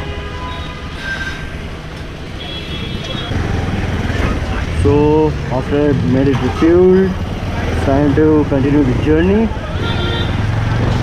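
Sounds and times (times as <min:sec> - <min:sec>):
motorcycle engine rumbling: 0:01.6 - 0:11.0.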